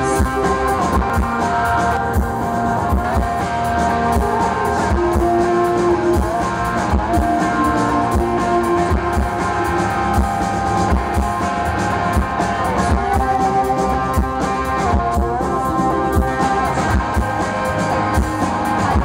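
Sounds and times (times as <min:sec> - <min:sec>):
drum kit steady beat: 0:00.0 - 0:19.0
electric guitar: 0:00.0 - 0:19.0.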